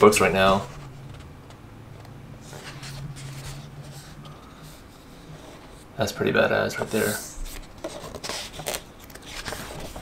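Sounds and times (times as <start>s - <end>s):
low steady hum: 0.0s - 10.0s
pages being turned: 2.4s - 4.5s, 7.0s - 10.0s.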